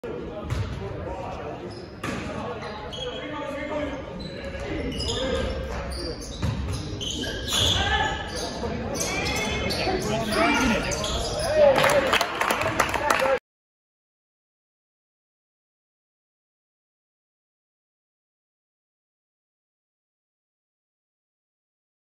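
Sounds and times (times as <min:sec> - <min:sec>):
basketball bouncing on court: 0:00.4 - 0:00.8, 0:06.3 - 0:06.8
players and spectators shouting: 0:09.0 - 0:12.2.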